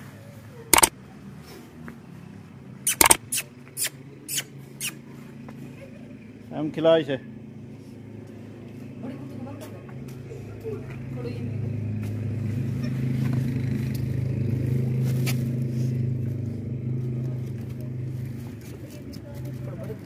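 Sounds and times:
vehicle engine humming: 0:00.0 - 0:20.0
sharp click: 0:02.9 - 0:03.5.

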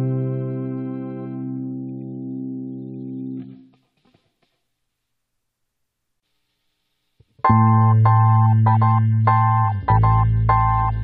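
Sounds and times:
held chord background music: 0:00.0 - 0:03.4, 0:07.5 - 0:11.0.

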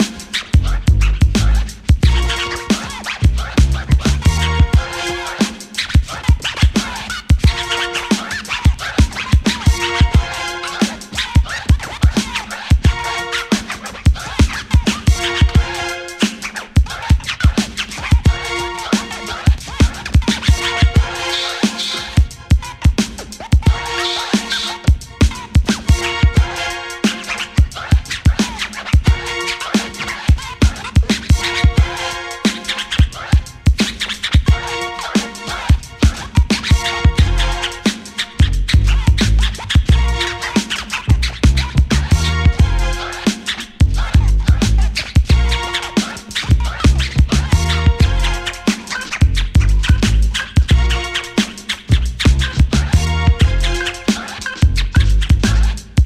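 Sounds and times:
drum beat with bass: 0:00.0 - 0:56.0
record scratching: 0:00.0 - 0:56.0
drum machine kicks: 0:30.3 - 0:32.0, 0:35.7 - 0:37.4.

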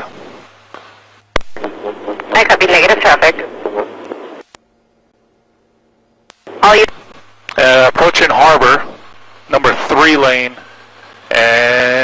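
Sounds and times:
radio channel hiss: 0:00.0 - 0:04.6, 0:06.3 - 0:12.0
low steady hum: 0:00.0 - 0:12.0.

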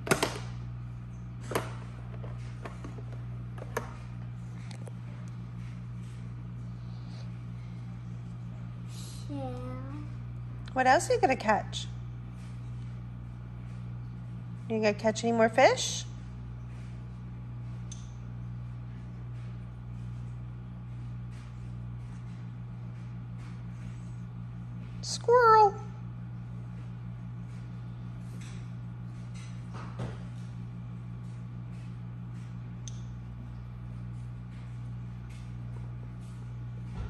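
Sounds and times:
low electrical hum: 0:00.0 - 0:37.0.

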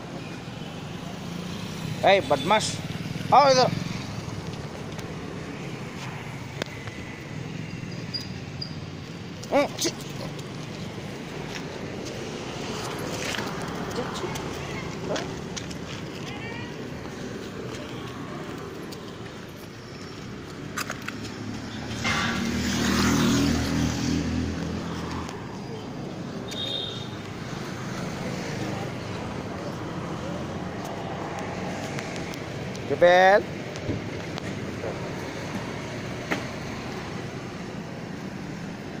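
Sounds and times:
street traffic rumble: 0:00.0 - 0:39.0.

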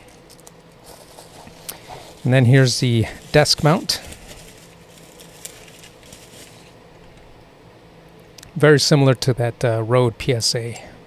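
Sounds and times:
packaging rustling and tapping: 0:00.2 - 0:06.7.

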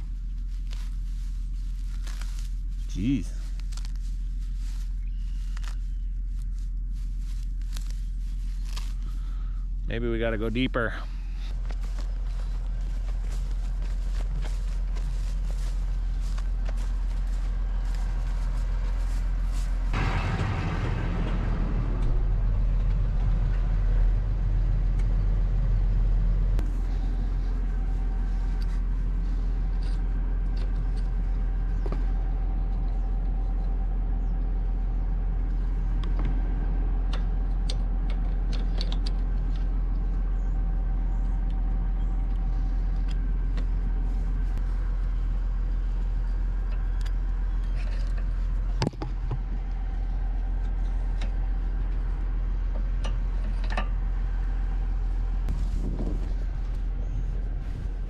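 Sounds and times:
tractor engine running: 0:00.0 - 0:58.0.

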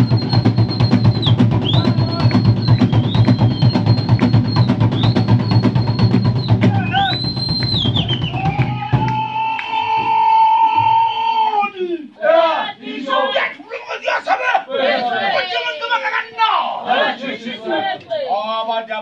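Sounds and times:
fast drumming: 0:00.0 - 0:09.5
high whistle blasts: 0:00.0 - 0:11.5.

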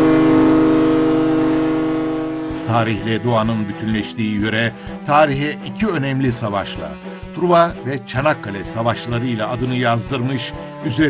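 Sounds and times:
ferry horn blast: 0:00.0 - 0:05.7.

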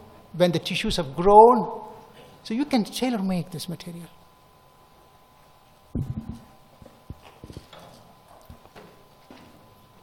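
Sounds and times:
sound system hum: 0:00.0 - 0:10.0.

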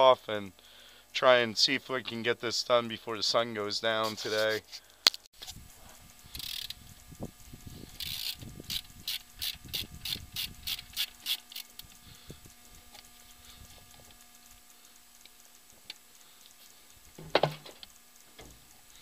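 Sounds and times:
short rasps: 0:04.0 - 0:17.9
socket ratchet wrench clicking: 0:06.2 - 0:06.8, 0:07.8 - 0:12.0.

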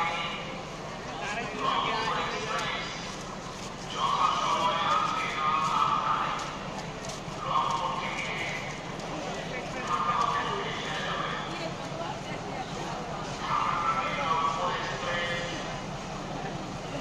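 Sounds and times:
crowd talking and calling out: 0:00.0 - 0:17.0
steady background hum: 0:00.0 - 0:17.0.

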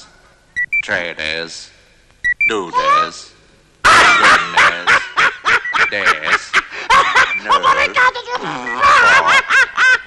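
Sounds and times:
cartoon gibberish voice chattering: 0:07.4 - 0:09.3.

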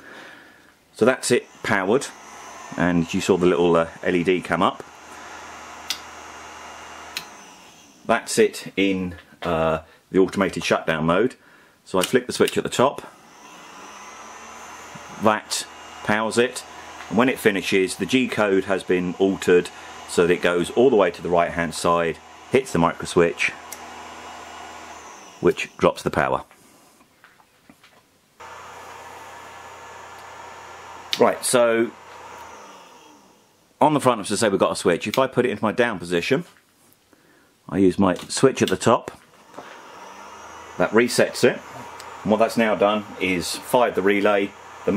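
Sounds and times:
printer cooling fans whirring: 0:01.0 - 0:08.1, 0:13.2 - 0:25.8, 0:28.4 - 0:33.4, 0:39.4 - 0:44.9.

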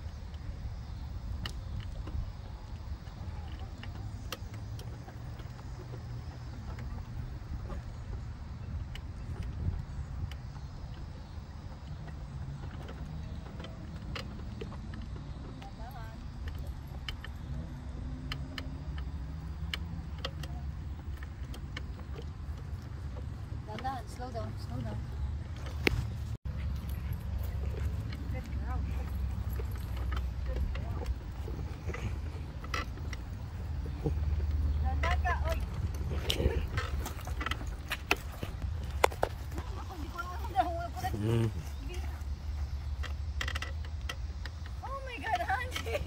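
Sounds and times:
light sharp ticks: 0:00.0 - 0:46.0
footsteps on brick: 0:12.0 - 0:46.0.

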